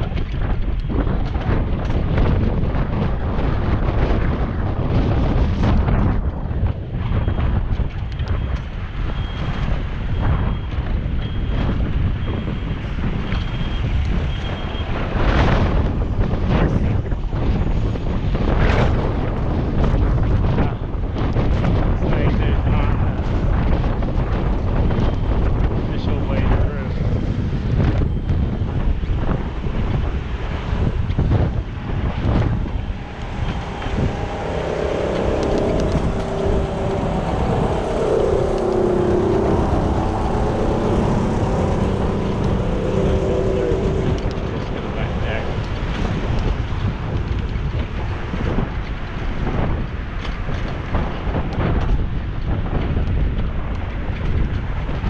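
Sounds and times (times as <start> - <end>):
wind buffeting microphone: 0.0 - 55.0
wavering tone: 29.5 - 46.8.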